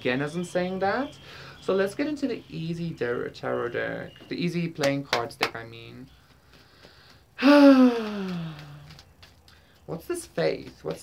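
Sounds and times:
man sighing: 7.4 - 8.9.

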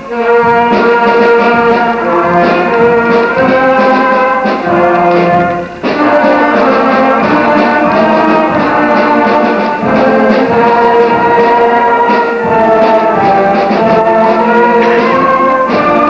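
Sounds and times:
concert band playing chords: 0.0 - 16.0.

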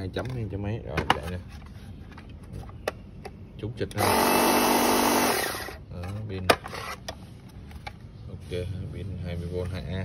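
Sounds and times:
pressure washer motor whining: 4.0 - 5.8.

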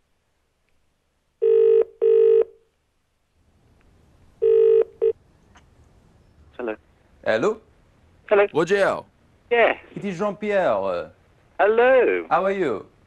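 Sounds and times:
telephone ringing: 1.4 - 2.5, 4.4 - 5.2.

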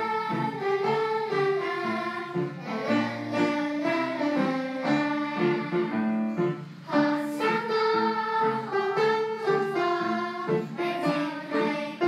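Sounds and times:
children's choir singing: 0.0 - 12.0.

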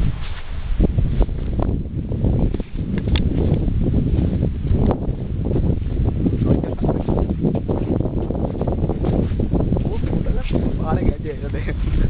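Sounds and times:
wind buffeting microphone: 0.0 - 12.0
camera handling click: 2.9 - 3.3.

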